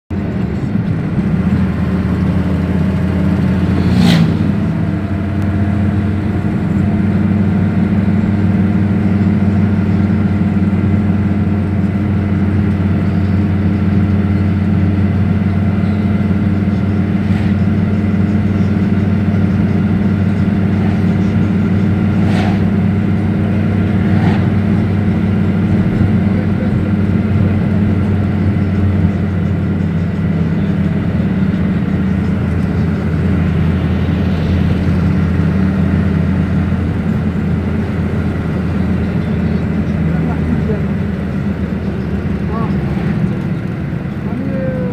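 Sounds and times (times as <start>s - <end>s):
train drone inside carriage: 0.1s - 44.9s.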